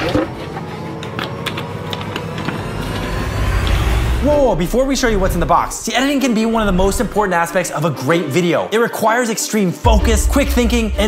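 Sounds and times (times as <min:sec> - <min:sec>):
low rumble: 0:01.0 - 0:07.7.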